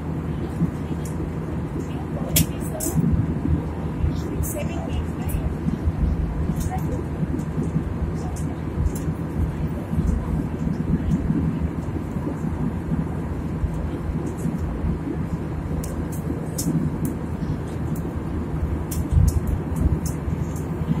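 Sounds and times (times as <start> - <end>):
jet engine cabin rumble: 0.0 - 21.0.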